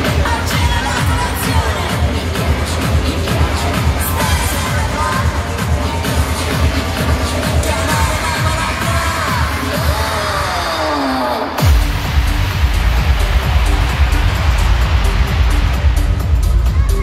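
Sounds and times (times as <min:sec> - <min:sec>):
live pop music: 0:00.0 - 0:17.0.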